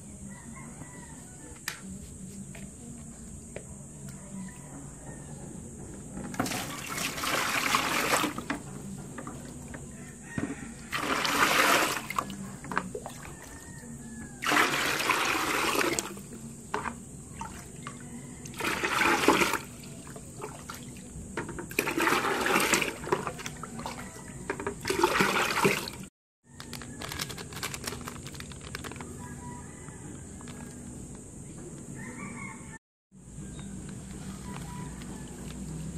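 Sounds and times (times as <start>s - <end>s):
water pouring into plastic bucket: 6.3s - 8.6s, 10.9s - 13.4s, 14.4s - 21.0s, 21.7s - 26.1s.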